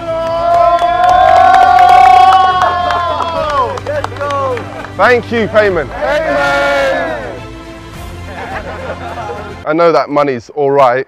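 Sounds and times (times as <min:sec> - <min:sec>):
people cheering: 0:00.0 - 0:05.2, 0:05.8 - 0:07.4
people clapping: 0:00.0 - 0:05.3
man yelling joyfully: 0:05.7 - 0:07.4.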